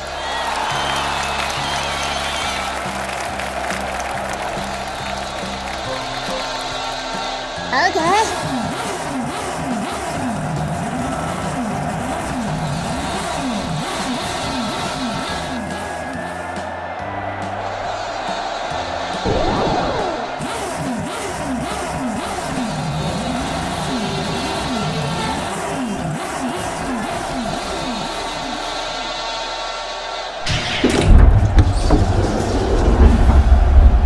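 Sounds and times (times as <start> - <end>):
background music: 0.0 - 31.9
race car engine revving: 0.7 - 34.0.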